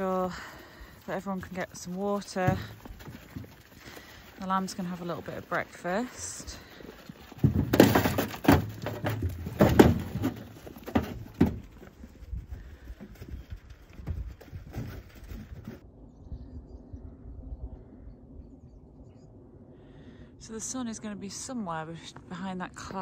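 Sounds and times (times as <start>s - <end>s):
faint low rumble: 11.9s - 23.0s.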